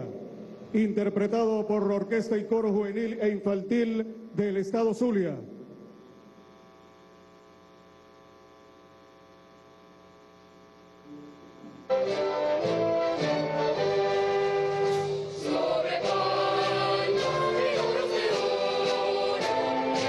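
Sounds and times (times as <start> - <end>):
faint steady hum: 0.0 - 20.0
choir singing: 12.2 - 20.0.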